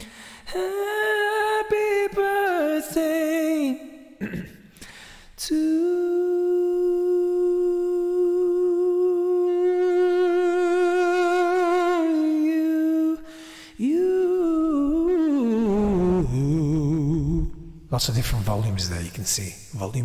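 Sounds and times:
breath: 0.0s - 0.5s, 4.7s - 5.4s, 13.3s - 13.8s
man singing long note: 5.4s - 17.8s.

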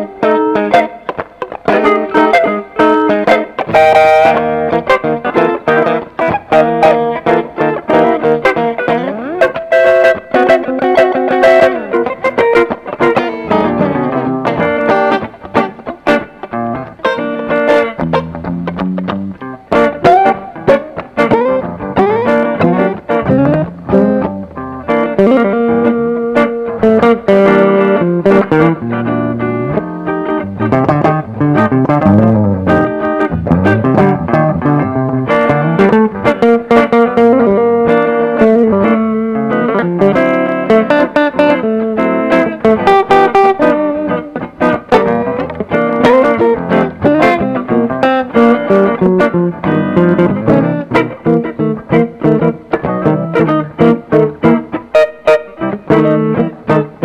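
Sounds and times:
electric guitars playing blues: 0.0s - 57.0s.

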